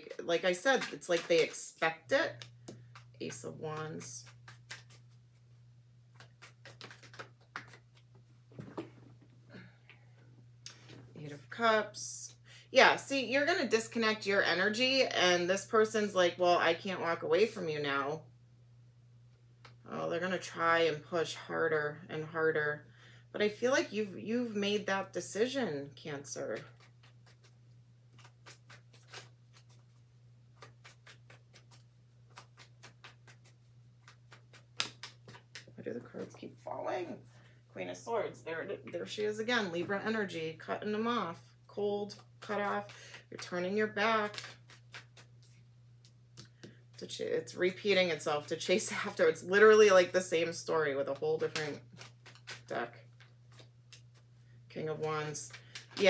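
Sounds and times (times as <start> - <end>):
cards being shuffled: 0.1 - 5.5, 6.1 - 9.0, 26.5 - 36.4, 42.1 - 47.0, 51.0 - 56.0
cards snapping: 2.3 - 5.2, 6.2 - 8.1, 28.1 - 29.8, 30.6 - 35.7, 44.2 - 46.8, 51.4 - 54.3, 55.0 - 56.0.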